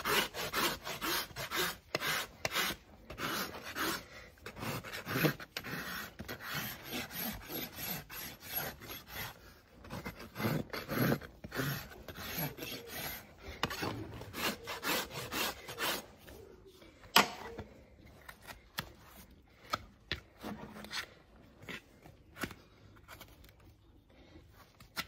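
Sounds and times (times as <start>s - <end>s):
hoof rasp scraping hoof: 0.0s - 16.2s.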